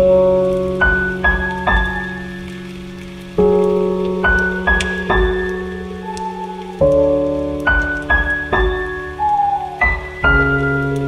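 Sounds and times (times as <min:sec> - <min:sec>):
slow soft piano: 0:00.0 - 0:11.0.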